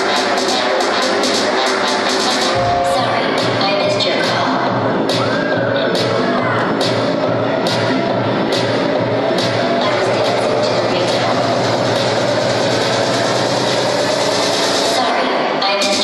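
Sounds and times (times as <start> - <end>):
disco dance music over speakers: 0.0 - 16.0
audience cheering: 2.4 - 3.5.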